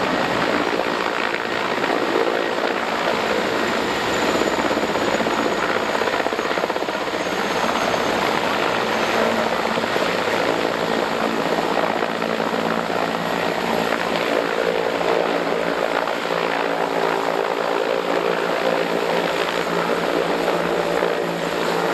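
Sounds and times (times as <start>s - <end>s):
faint high turbine whine: 0.0s - 21.9s
helicopter rotor chop: 0.0s - 21.9s.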